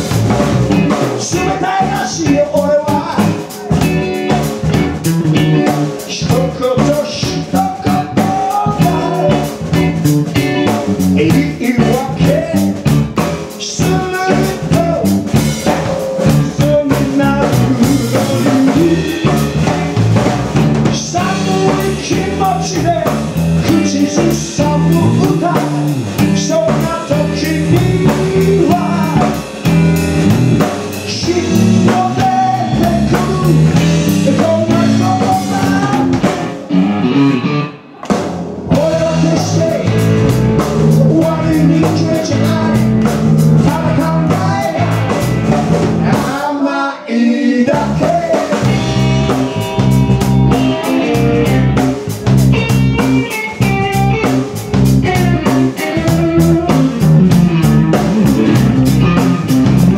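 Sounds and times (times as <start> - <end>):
live rock band playing: 0.0 - 46.6, 47.7 - 59.9
man singing lead vocal: 0.8 - 4.4, 5.3 - 19.8, 20.8 - 29.5, 30.9 - 37.1, 38.7 - 49.9.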